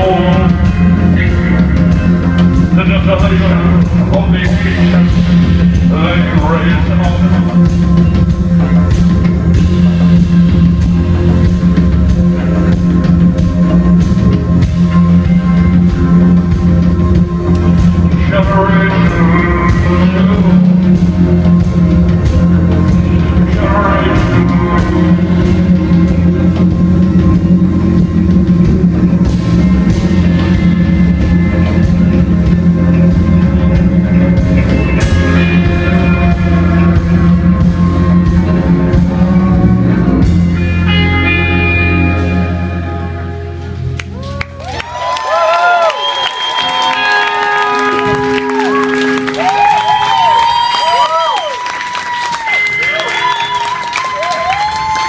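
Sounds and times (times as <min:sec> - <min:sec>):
crowd applause and cheering: 0:00.0 - 0:55.0
electric guitars bending notes: 0:00.0 - 0:55.0
loud live rock band: 0:00.0 - 0:55.0.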